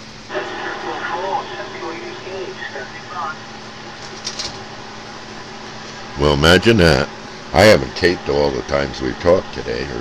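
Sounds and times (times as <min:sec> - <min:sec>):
faint hum: 0:00.0 - 0:10.0
radio receiver hiss: 0:00.0 - 0:10.0
radio crackle: 0:00.3 - 0:05.0.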